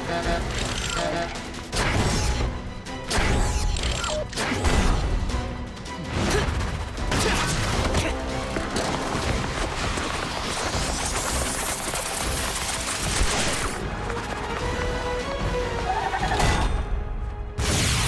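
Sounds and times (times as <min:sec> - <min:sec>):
action cartoon music: 0:00.0 - 0:18.0.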